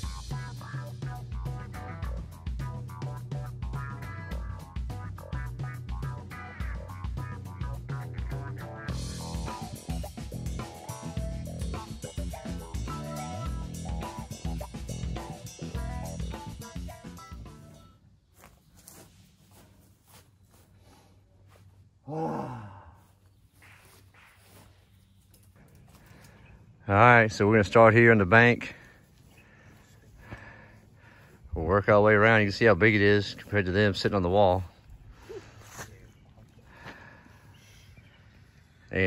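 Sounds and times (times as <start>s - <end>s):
guitar bass and drums music: 0.0s - 17.9s.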